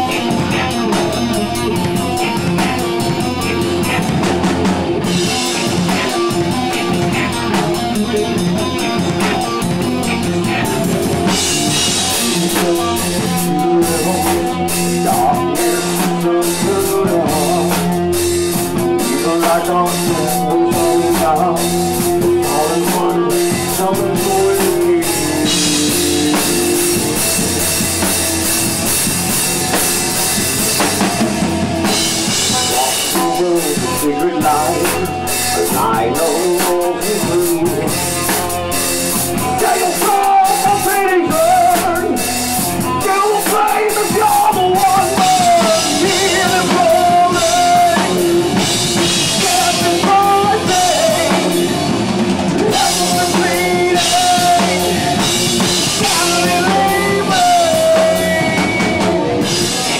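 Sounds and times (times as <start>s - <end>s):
drum kit with cymbals: 0.0s - 59.9s
electric guitar: 0.0s - 59.9s
keyboards holding long notes: 0.0s - 59.9s.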